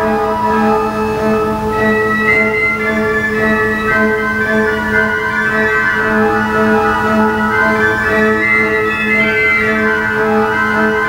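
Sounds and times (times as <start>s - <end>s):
pipe organ playing lively dance: 0.0s - 11.0s.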